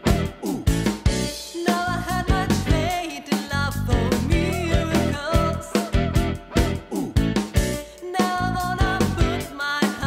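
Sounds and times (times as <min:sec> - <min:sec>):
pop-rock band playing: 0:00.0 - 0:10.0
woman singing: 0:01.4 - 0:07.1, 0:07.9 - 0:10.0.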